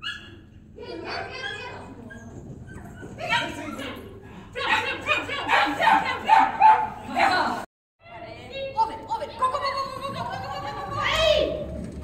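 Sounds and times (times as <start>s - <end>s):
dog barking: 4.6s - 7.0s.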